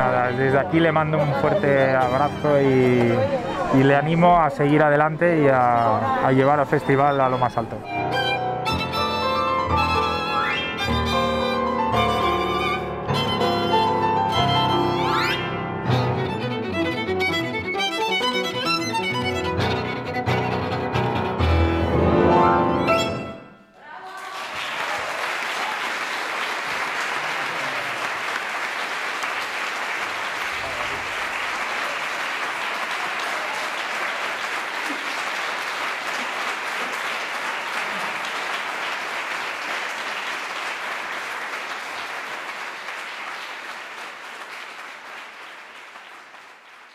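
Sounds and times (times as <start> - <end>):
audience applauding: 0.0 - 7.8, 23.9 - 46.9.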